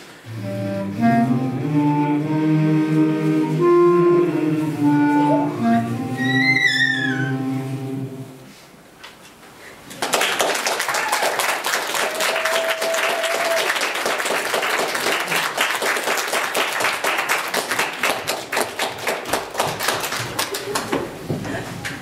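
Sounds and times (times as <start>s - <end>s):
audience applauding: 9.9s - 21.2s.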